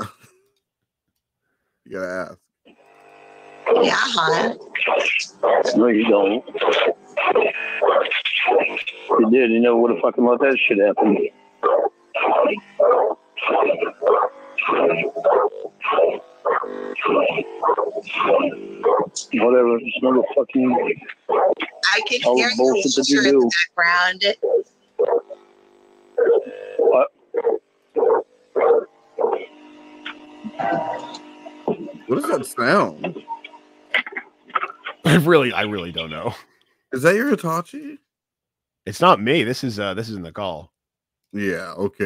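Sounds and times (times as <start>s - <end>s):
buzzing hum: 1.9s - 37.5s
voices over telephone line: 3.7s - 16.2s, 18.0s - 24.4s.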